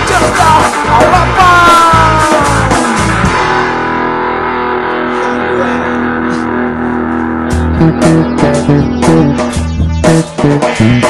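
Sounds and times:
electric guitar chords ringing: 0:00.0 - 0:11.0
rock drums and bass: 0:00.0 - 0:11.0.

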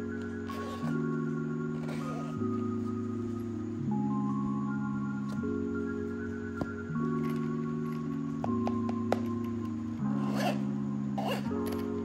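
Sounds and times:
soft background music: 0:00.0 - 0:12.0
carrying case zipper rasping: 0:00.5 - 0:01.0, 0:01.8 - 0:02.4, 0:10.2 - 0:10.6, 0:11.2 - 0:11.8.

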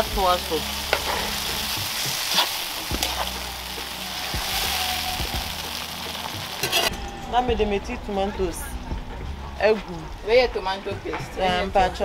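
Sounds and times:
vegetables sizzling in a pot: 0:00.0 - 0:06.9.

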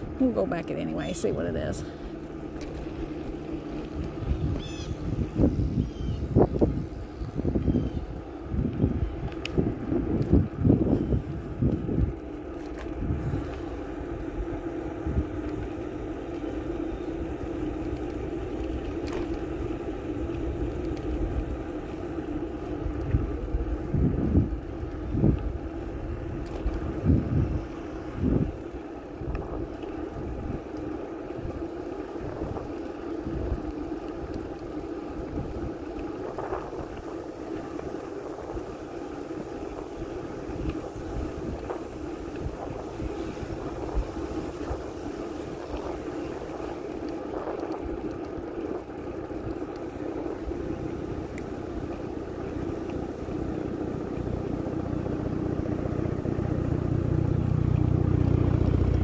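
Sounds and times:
steady hum: 0:00.0 - 0:59.0
wind buffeting microphone: 0:00.0 - 0:59.0.

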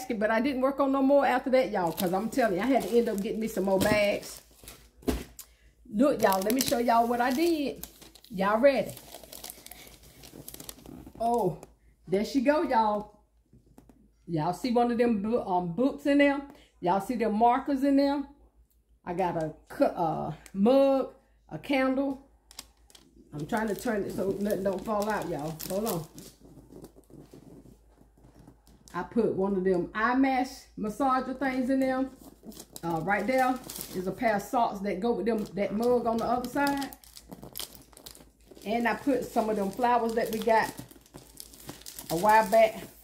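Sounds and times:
paper bag and tissue paper rustling: 0:01.8 - 0:05.3, 0:06.1 - 0:11.4, 0:23.4 - 0:28.9, 0:32.0 - 0:34.5, 0:35.3 - 0:43.0.

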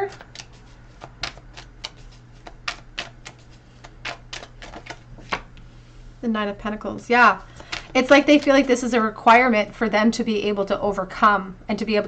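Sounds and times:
cards being shuffled: 0:00.1 - 0:05.6, 0:07.5 - 0:08.7.

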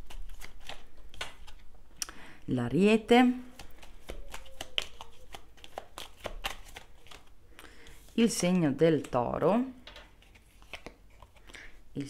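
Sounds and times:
cards being shuffled: 0:00.0 - 0:01.8, 0:03.4 - 0:11.7.

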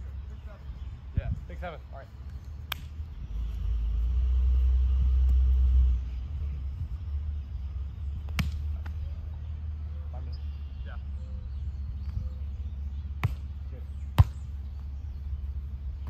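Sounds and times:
volleyball being hit: 0:13.2 - 0:13.5.

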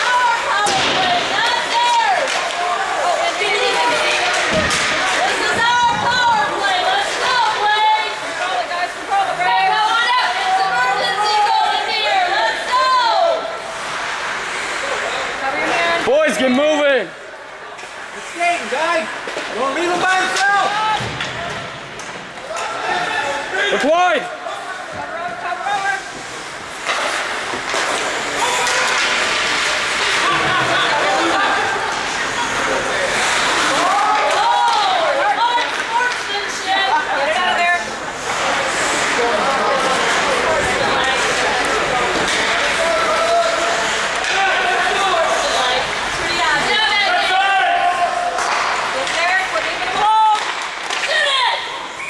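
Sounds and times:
people shouting and calling: 0:00.0 - 0:17.2, 0:18.3 - 0:52.0
crowd and play noise: 0:00.0 - 0:52.0.

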